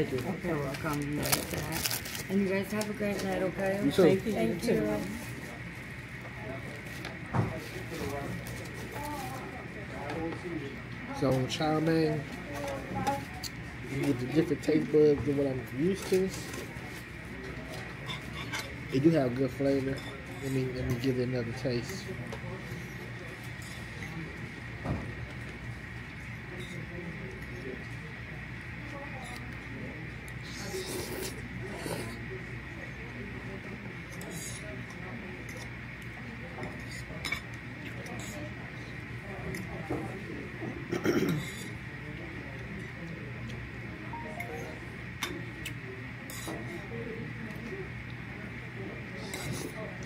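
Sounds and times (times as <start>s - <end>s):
room hum: 0.0s - 50.0s.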